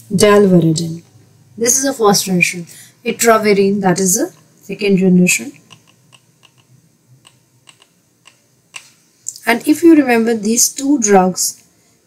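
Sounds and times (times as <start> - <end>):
stylus tapping on tablet screen: 5.6 - 9.0.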